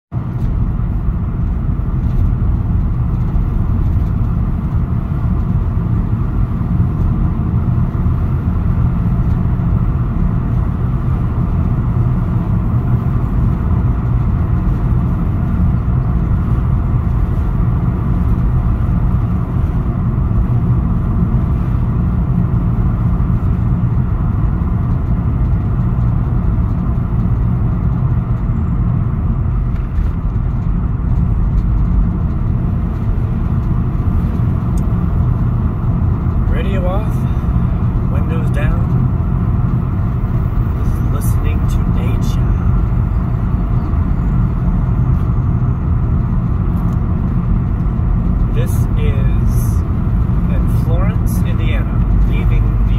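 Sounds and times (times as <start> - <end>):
car engine and road noise: 0.1 - 52.9.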